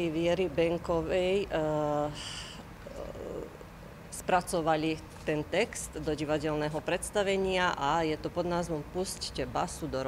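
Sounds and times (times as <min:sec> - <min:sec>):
breathy hiss of woman's speech: 0:01.8 - 0:03.8.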